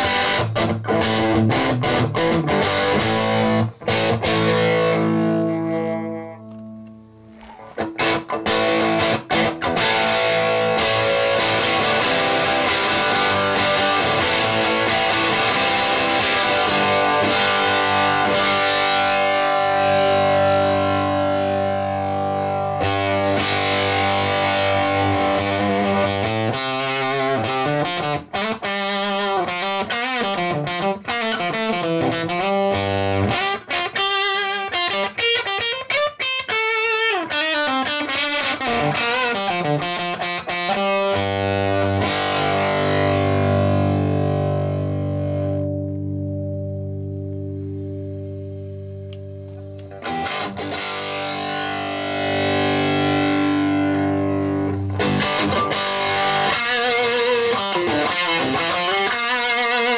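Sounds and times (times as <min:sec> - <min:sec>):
fuzzed electric guitar: 0:00.0 - 0:59.9.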